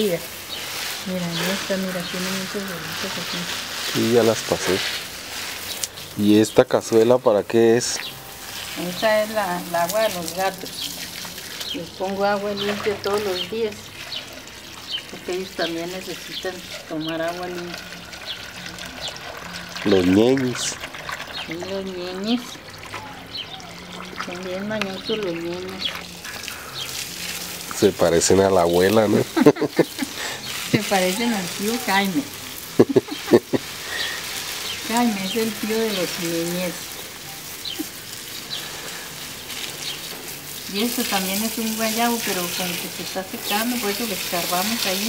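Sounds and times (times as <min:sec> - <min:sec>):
hose water pouring into container: 0:00.0 - 0:45.0.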